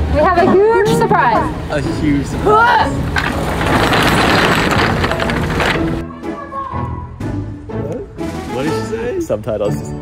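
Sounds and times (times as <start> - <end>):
roll-up metal door rattling: 3.0 - 6.0.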